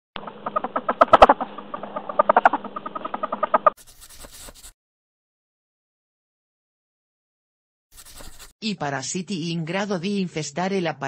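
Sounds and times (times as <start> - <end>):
rapid chattering animal calls: 0.2 - 3.8.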